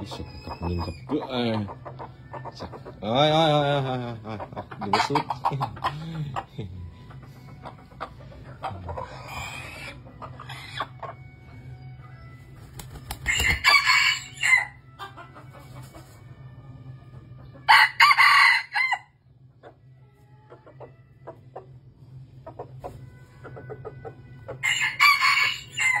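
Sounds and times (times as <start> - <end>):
rooster crowing: 13.2 - 14.8, 17.7 - 19.1, 24.6 - 26.0.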